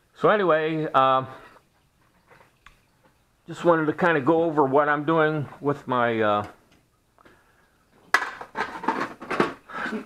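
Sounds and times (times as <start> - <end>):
objects clattering on a workbench: 8.0 - 10.0.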